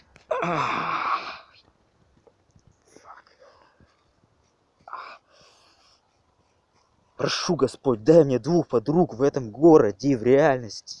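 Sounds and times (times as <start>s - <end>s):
man crying out in pain: 0.3s - 1.5s
man breathing: 4.8s - 7.1s.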